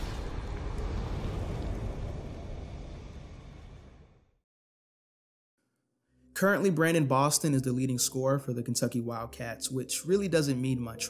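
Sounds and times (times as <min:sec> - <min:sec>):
deep noisy rumble: 0:00.0 - 0:04.4.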